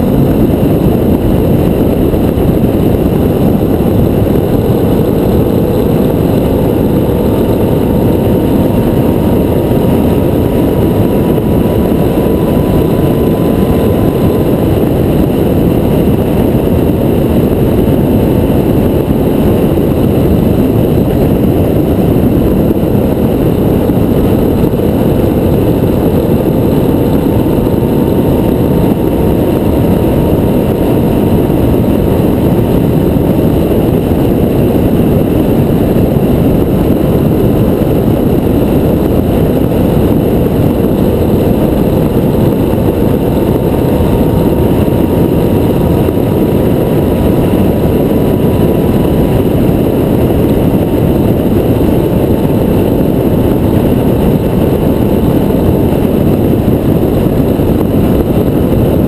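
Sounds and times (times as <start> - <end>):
faint hum drifting in pitch: 0.0 - 59.0
motorcycle engine drone: 0.0 - 59.0
wind rushing over microphone: 0.0 - 59.0.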